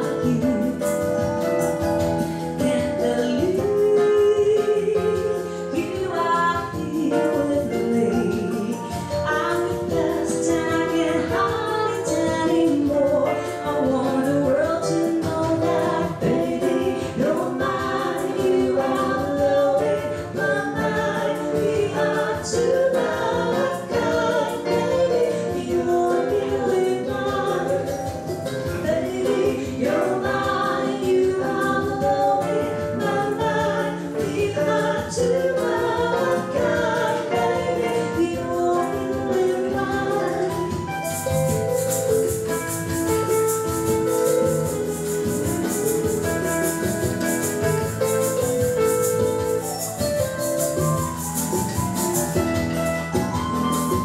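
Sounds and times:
woman singing into a microphone: 0:00.0 - 0:41.3
digital piano playing: 0:00.0 - 0:54.0.

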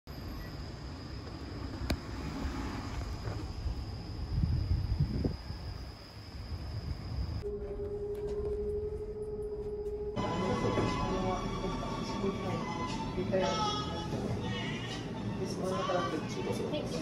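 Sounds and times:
steady low hum: 0:00.1 - 0:17.0.

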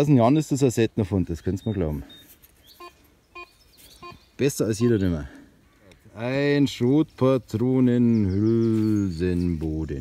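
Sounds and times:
metal detector beeps: 0:01.6 - 0:04.2.

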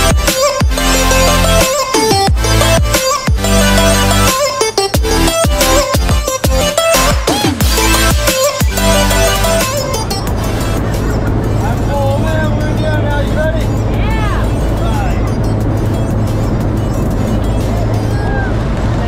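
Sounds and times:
background music: 0:00.0 - 0:18.6
broad rush of noise: 0:00.0 - 0:19.0
propeller plane engine drone: 0:00.0 - 0:19.0.

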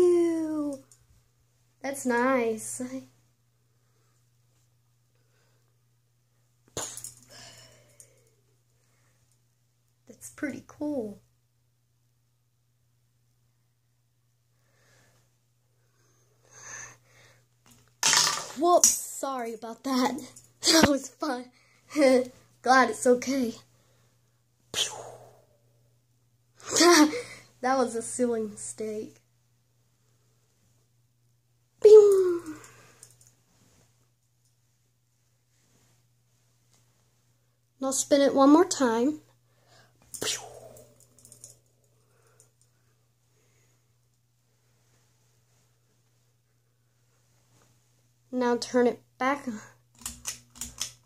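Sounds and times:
low steady hum: 0:00.0 - 0:51.0.

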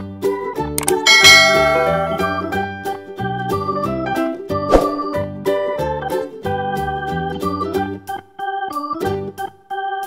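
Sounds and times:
bright bell chime: 0:00.8 - 0:03.0.

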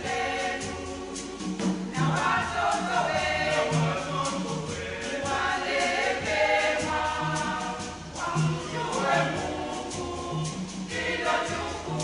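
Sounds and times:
choir singing in harmony: 0:00.0 - 0:12.0
percussion beat: 0:00.0 - 0:12.0.

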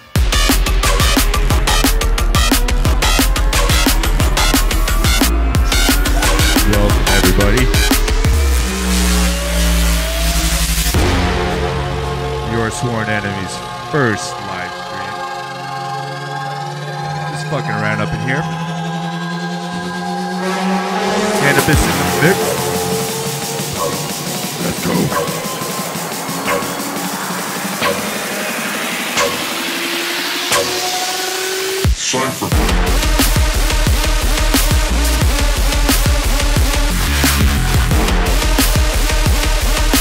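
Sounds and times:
heavy held sub-bass: 0:00.2 - 0:15.1, 0:17.2 - 0:26.1, 0:32.5 - 0:40.0
hissing riser: 0:03.0 - 0:11.1, 0:15.4 - 0:37.8
slowly rising tone: 0:15.4 - 0:31.8.

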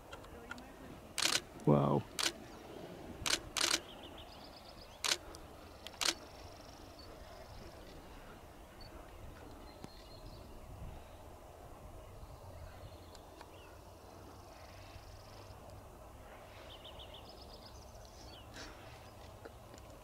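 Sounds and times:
faint outdoor background: 0:00.0 - 0:20.0
camera shutter clicks: 0:01.2 - 0:01.4, 0:02.2 - 0:02.4, 0:03.2 - 0:03.8, 0:05.0 - 0:05.3, 0:05.9 - 0:06.2.

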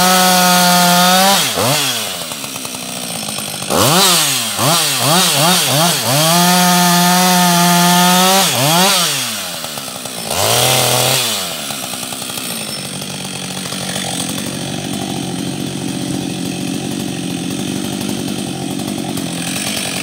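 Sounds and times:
chainsaw cutting log: 0:00.0 - 0:20.0
chainsaw idling: 0:00.0 - 0:20.0.

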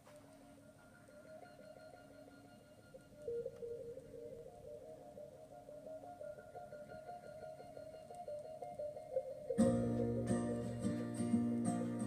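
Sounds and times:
faint pop music from record: 0:00.0 - 0:12.0.

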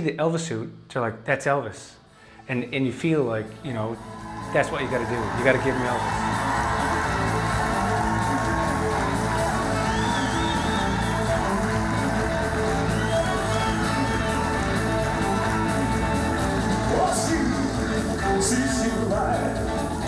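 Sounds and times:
bass: 0:02.5 - 0:20.0
drums: 0:03.7 - 0:20.0
live rock and roll band: 0:04.2 - 0:20.0.

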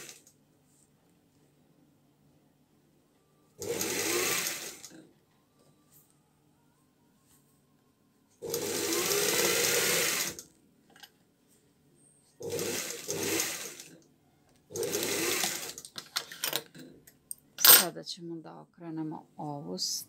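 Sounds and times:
sewing machine stitching: 0:03.6 - 0:05.0, 0:08.4 - 0:10.4, 0:12.4 - 0:14.0, 0:14.7 - 0:15.9.

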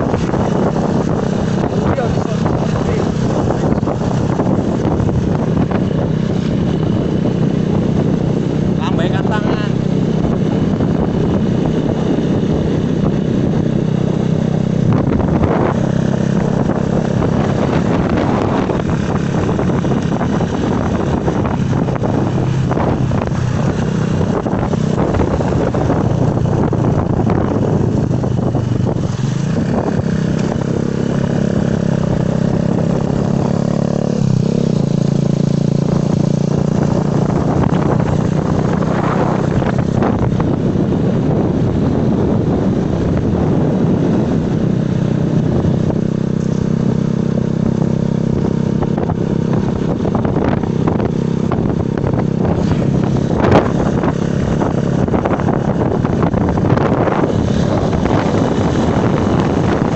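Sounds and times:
small motorcycle engine running: 0:00.0 - 0:59.9
wind noise on microphone: 0:00.0 - 0:59.9.

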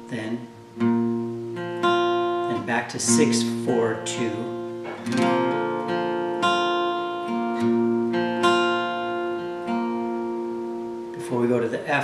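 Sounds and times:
acoustic guitar picking: 0:00.0 - 0:12.0.

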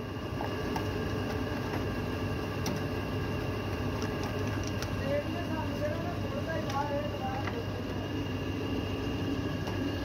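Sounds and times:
moulding press electric hum: 0:00.0 - 0:10.0.

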